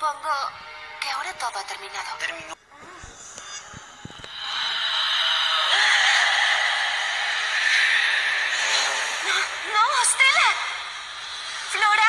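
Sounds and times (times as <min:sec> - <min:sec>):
hissing whoosh: 0:04.2 - 0:12.0.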